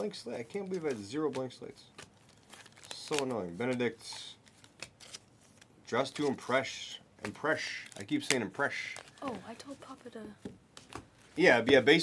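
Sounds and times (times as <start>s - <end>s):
trading cards flipped by hand: 0.6s - 6.6s, 10.7s - 11.4s.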